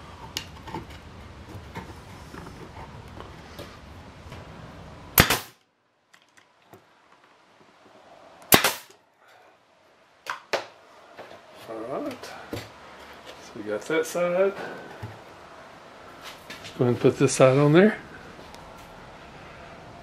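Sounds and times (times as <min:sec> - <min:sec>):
nail gun firing: 0:05.2 - 0:05.6, 0:08.5 - 0:08.9.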